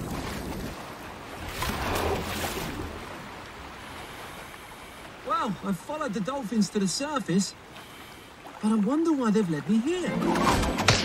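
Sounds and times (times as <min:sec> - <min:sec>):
sea water rushing: 0:00.0 - 0:11.0.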